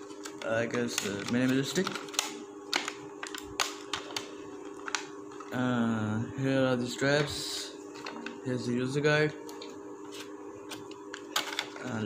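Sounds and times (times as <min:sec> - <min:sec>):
steady low hum: 0:00.0 - 0:12.0
plastic tray crinkling and clicking: 0:00.1 - 0:05.6.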